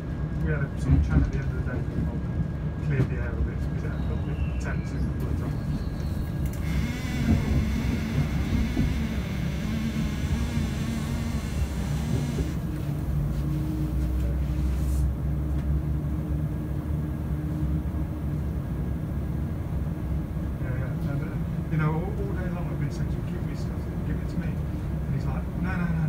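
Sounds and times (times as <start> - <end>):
train diesel engine rumble: 0.0 - 26.0
train wheels on rails: 5.2 - 14.4.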